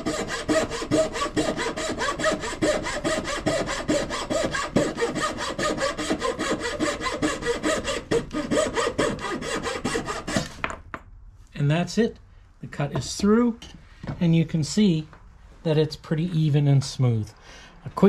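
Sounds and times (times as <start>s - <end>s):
saw rasping through wood: 0.0s - 10.6s.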